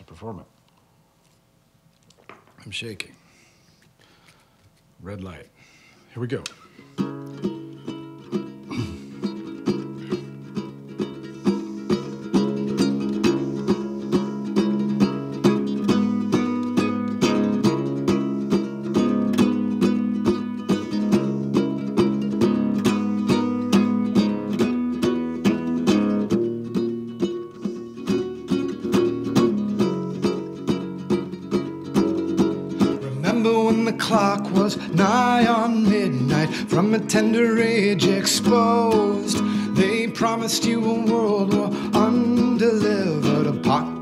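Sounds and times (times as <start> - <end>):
ukulele playing: 6.6 - 44.0.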